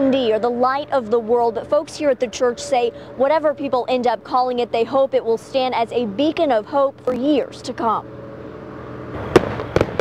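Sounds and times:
fireworks rush of noise: 0:09.1 - 0:10.0
sharp firework bangs: 0:09.2 - 0:10.0.

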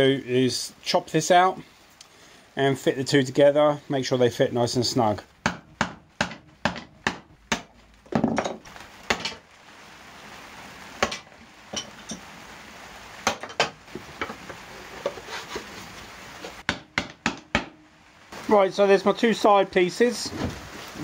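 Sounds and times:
plywood pieces scraping together: 0:13.6 - 0:16.6
wood knocks: 0:16.6 - 0:17.8.

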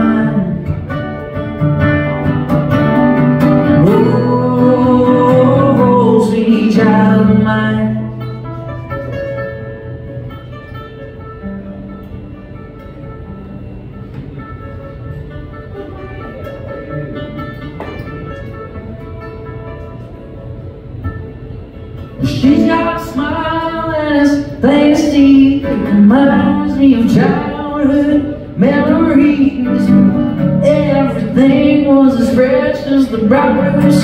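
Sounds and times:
acoustic guitar playing: 0:00.0 - 0:34.0.

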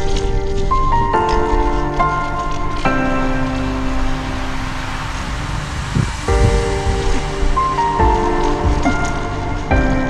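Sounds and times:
low beats: 0:00.0 - 0:10.0
electronic music: 0:02.5 - 0:10.0
hiss: 0:03.1 - 0:09.4.

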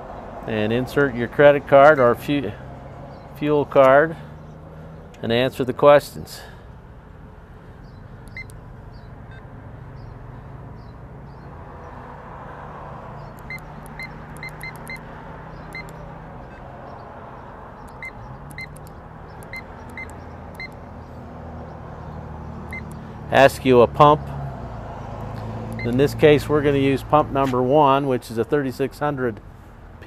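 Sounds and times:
keypad beeps: 0:08.3 - 0:08.6, 0:13.3 - 0:15.0, 0:15.6 - 0:16.7, 0:17.8 - 0:20.8, 0:22.7 - 0:23.0, 0:25.8 - 0:26.0.

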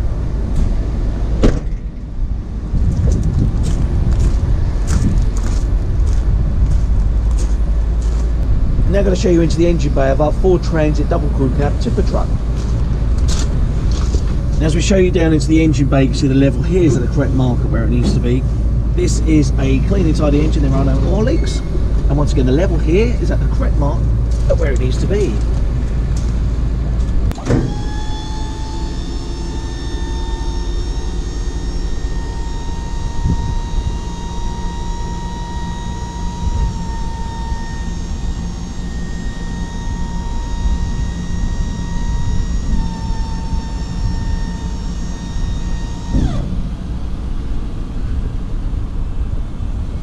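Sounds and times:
electric hydraulic pump whine: 0:00.0 - 0:50.0
low rumble: 0:00.0 - 0:50.0.

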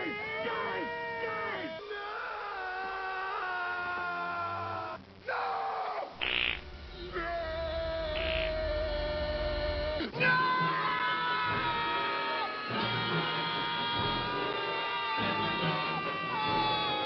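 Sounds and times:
people screaming: 0:00.0 - 0:06.2, 0:06.8 - 0:17.0.

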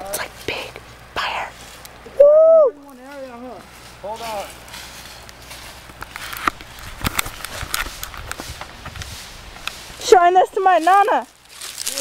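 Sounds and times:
footsteps through dry brush: 0:00.3 - 0:02.1, 0:02.8 - 0:12.0.

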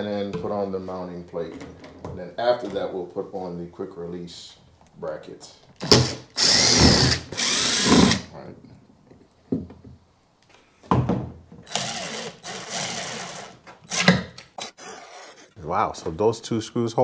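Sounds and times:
cordless drill driving screws: 0:05.8 - 0:08.3, 0:11.7 - 0:15.5.

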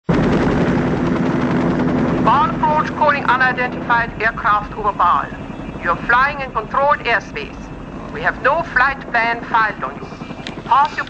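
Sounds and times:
helicopter engine and rotors: 0:00.1 - 0:11.0.

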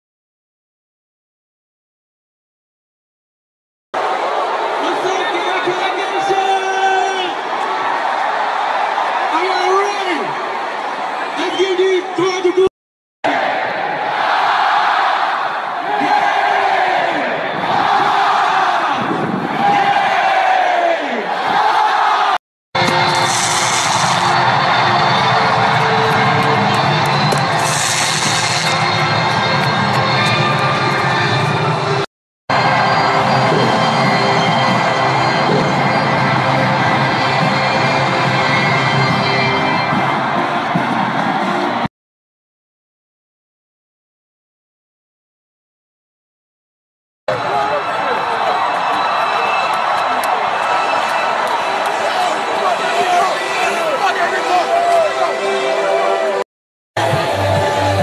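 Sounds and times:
stadium crowd: 0:04.0 - 0:41.9, 0:47.3 - 0:56.4, 0:57.0 - 0:58.0
music over stadium speakers: 0:22.8 - 0:41.9, 0:57.0 - 0:58.0.

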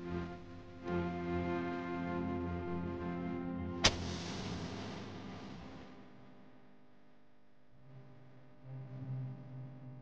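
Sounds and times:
background music: 0:00.0 - 0:06.3.

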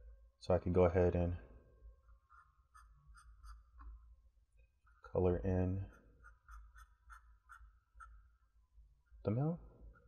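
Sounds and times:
marker squeaking on paper: 0:02.0 - 0:04.0, 0:05.9 - 0:08.6.

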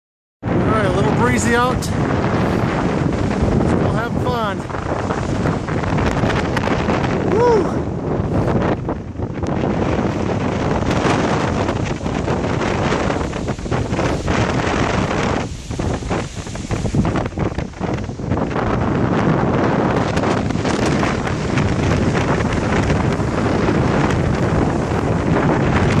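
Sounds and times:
wind buffeting microphone: 0:00.4 - 0:26.0.

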